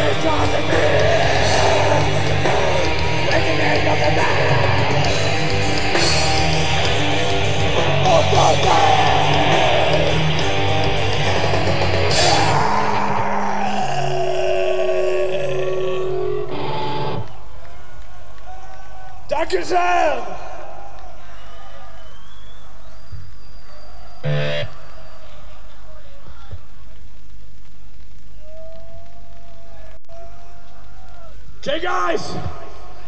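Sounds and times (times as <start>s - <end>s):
distorted electric guitars and bass: 0.0s - 17.5s, 24.2s - 24.9s.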